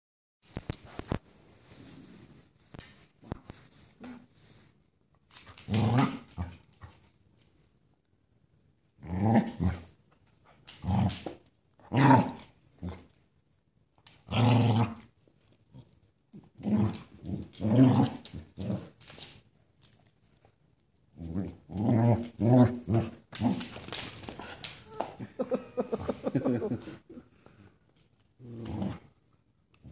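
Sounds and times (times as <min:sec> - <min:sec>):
dog growling in play: 0:05.6 - 0:06.6, 0:09.0 - 0:09.9, 0:14.2 - 0:15.1, 0:16.6 - 0:18.9, 0:21.1 - 0:23.7, 0:28.4 - 0:29.2.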